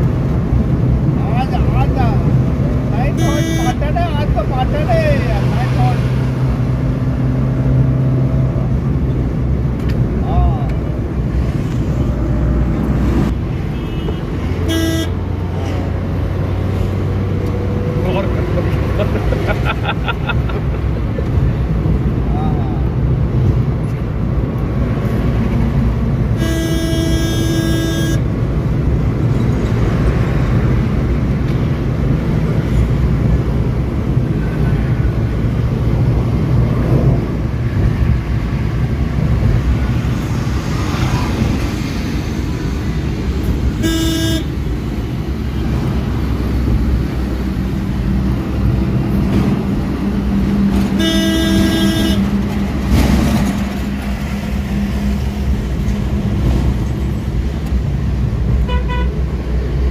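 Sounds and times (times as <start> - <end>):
car engine and road noise: 0.0 - 59.9
car horn honking: 3.1 - 3.9, 13.7 - 15.3, 26.4 - 28.3, 43.7 - 44.6, 50.9 - 52.4, 58.7 - 59.2.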